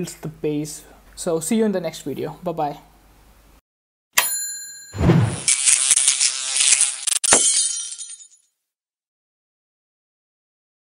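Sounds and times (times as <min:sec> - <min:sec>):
tinkling glass shards: 0:05.4 - 0:08.4
glass shattering: 0:06.7 - 0:08.4.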